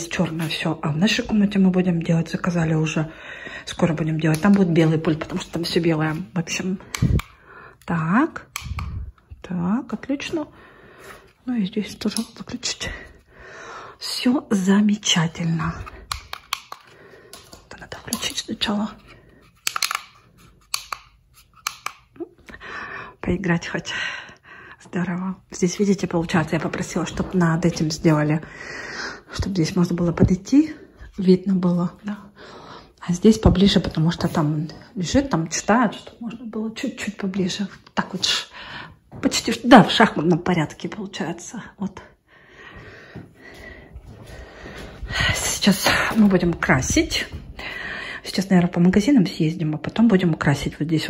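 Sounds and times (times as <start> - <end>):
soft breathing: 3.1 - 3.7, 10.5 - 11.5, 12.8 - 14.0, 16.8 - 17.7, 22.5 - 23.2, 23.8 - 24.9, 28.4 - 29.3, 32.2 - 33.0, 38.5 - 39.1, 42.1 - 46.2, 47.5 - 48.3.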